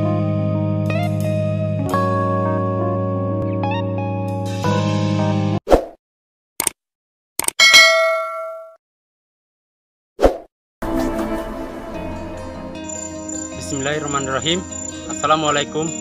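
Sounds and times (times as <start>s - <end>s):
background music: 0.0s - 5.6s, 10.8s - 16.0s
bright bell-like ding: 7.6s - 8.8s
short swish: 10.2s - 10.5s.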